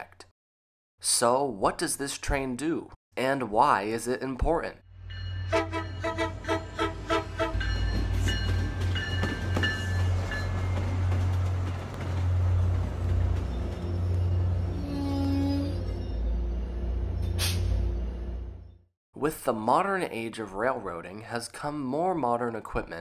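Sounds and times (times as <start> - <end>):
train rumbling on tracks: 4.9 - 18.8
bell ringing: 5.0 - 10.8
train horn: 5.4 - 7.7.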